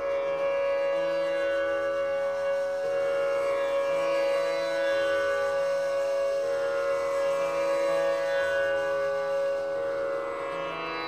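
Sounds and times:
bamboo flute sustained notes: 0:00.0 - 0:11.0.

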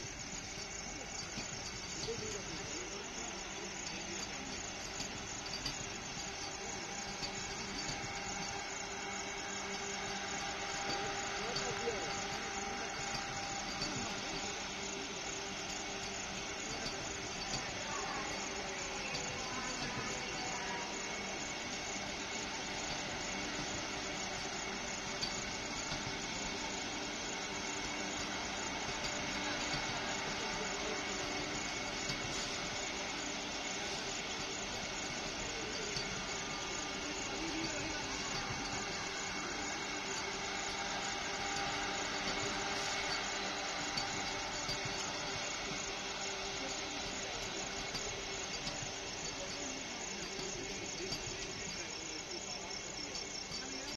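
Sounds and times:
electric train rolling past: 0:00.0 - 0:53.9
hiss from train coaches: 0:00.0 - 0:53.9.

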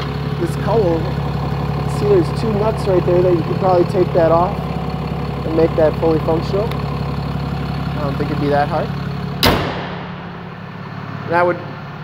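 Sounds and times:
diesel engine idling: 0:00.0 - 0:12.0
truck hood slamming shut: 0:09.4 - 0:10.3.

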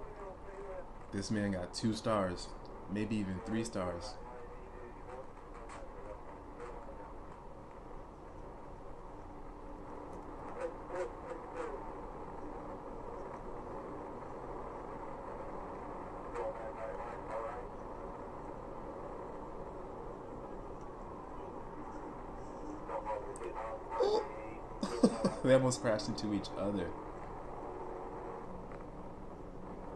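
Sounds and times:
muffled speech: 0:00.0 - 0:07.4, 0:10.4 - 0:13.4, 0:16.1 - 0:18.0, 0:20.3 - 0:27.0.

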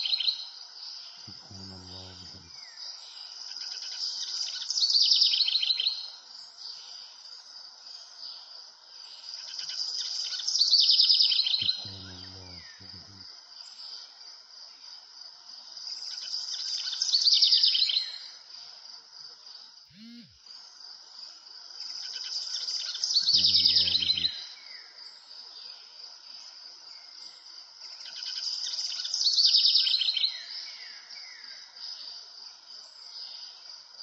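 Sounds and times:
insects trilling: 0:00.0 - 0:34.0
birds chirping: 0:01.3 - 0:02.8, 0:11.5 - 0:13.2, 0:23.1 - 0:24.4.

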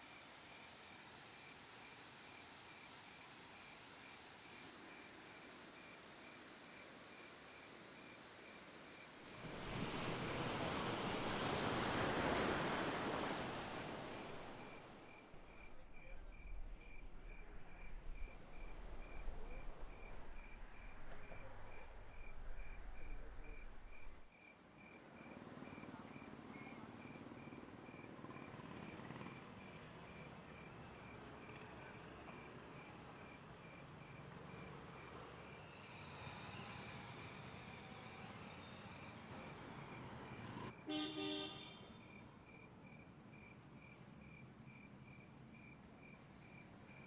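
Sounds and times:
cricket chirping: 0:00.0 - 0:47.0
faint distant traffic hum: 0:00.0 - 0:47.0.

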